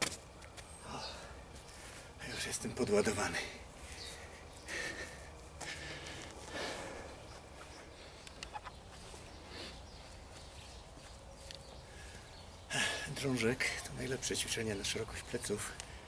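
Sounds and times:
man breathing hard: 0:00.8 - 0:02.2, 0:03.7 - 0:08.2
faint clicks: 0:08.2 - 0:08.7.

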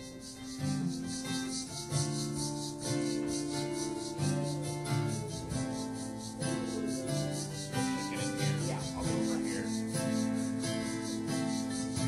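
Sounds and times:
worship band playing: 0:00.0 - 0:12.0.

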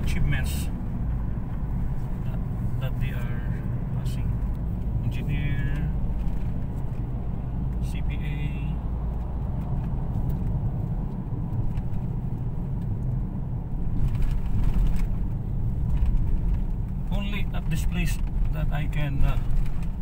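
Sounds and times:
car interior road noise: 0:00.0 - 0:20.0.

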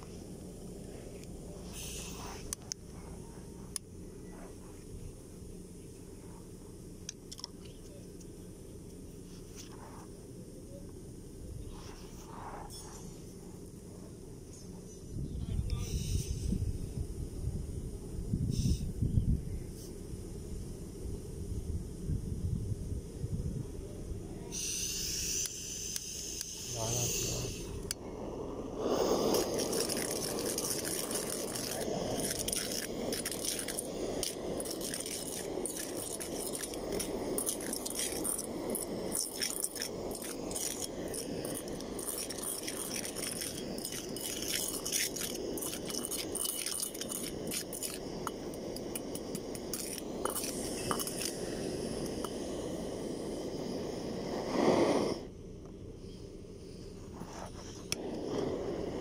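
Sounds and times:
short hiss: 0:00.0 - 0:02.8, 0:15.7 - 0:16.7, 0:18.4 - 0:19.0, 0:24.5 - 0:28.0, 0:28.7 - 0:55.3
soil rattling in metal cylinder: 0:28.8 - 0:52.4.

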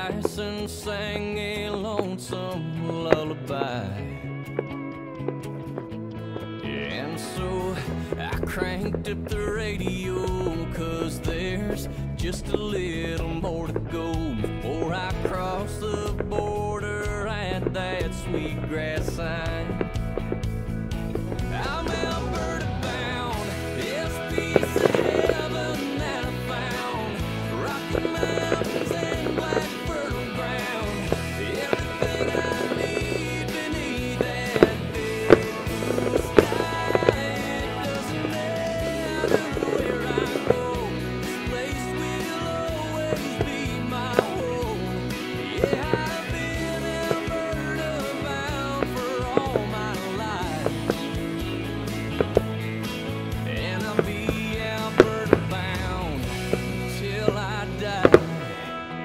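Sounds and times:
instrumental country music: 0:00.0 - 0:59.0
firework bangs: 0:08.4 - 0:58.4.

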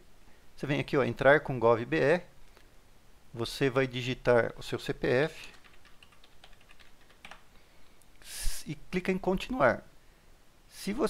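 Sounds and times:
keyboard keystrokes: 0:05.5 - 0:07.4.

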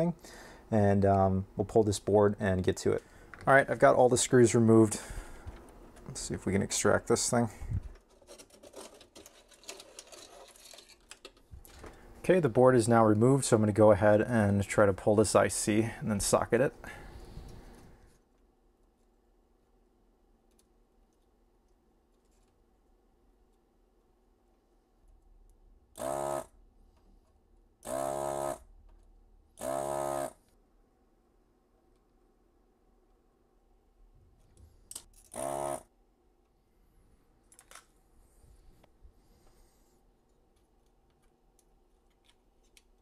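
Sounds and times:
suction pump buzzing: 0:26.0 - 0:26.5, 0:27.8 - 0:28.6, 0:29.6 - 0:30.4, 0:35.3 - 0:35.8.

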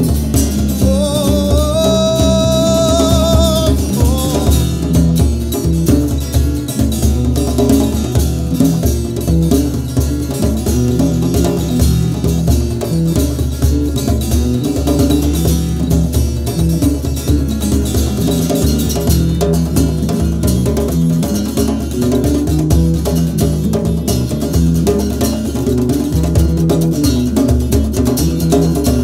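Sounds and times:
djembe drumming: 0:00.0 - 0:29.0
electric bass guitar: 0:00.0 - 0:29.0
strummed acoustic guitar: 0:00.0 - 0:29.0.

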